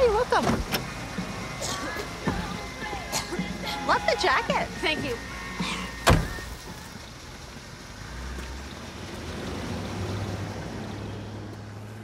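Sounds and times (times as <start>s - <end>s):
car engine hum: 0.0s - 12.0s
car door slamming: 5.6s - 6.6s.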